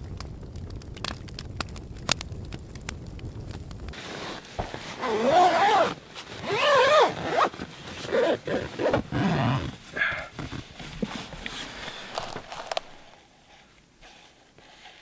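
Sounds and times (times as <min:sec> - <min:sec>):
fabric rustling: 0:03.9 - 0:15.0
tent zipper pulled: 0:04.0 - 0:13.2.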